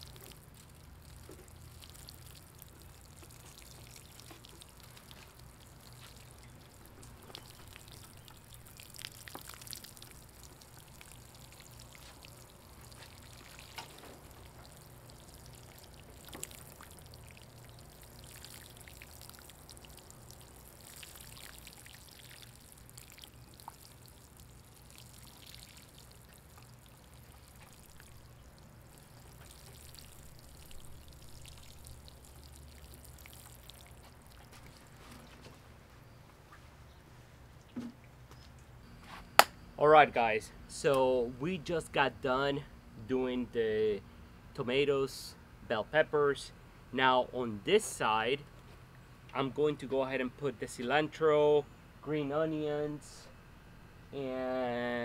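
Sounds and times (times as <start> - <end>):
water sprinkling onto soil: 0.0 - 35.4.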